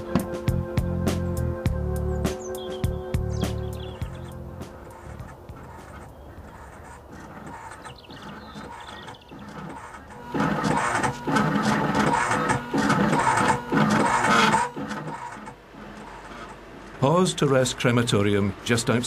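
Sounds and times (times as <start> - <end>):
soft music: 0.0 - 5.6
engraving machine cutting metal: 3.8 - 19.0.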